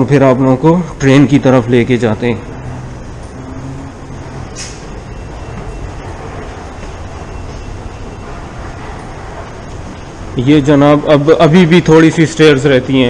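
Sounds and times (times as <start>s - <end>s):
underground station rumble: 0.0s - 13.0s
brief hiss: 4.6s - 4.9s.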